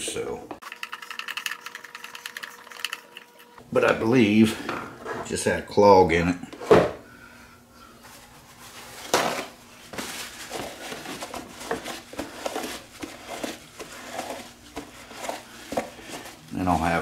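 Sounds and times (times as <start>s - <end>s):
paper towel rustling and rubbing: 8.1s - 17.0s.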